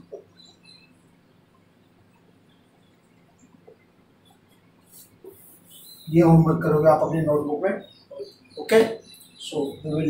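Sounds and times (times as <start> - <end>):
marker squeaking on whiteboard: 4.4 - 6.3.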